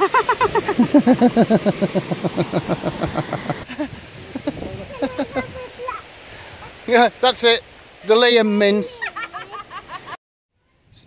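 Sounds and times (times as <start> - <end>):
woman laughing hard: 0.0 - 5.4.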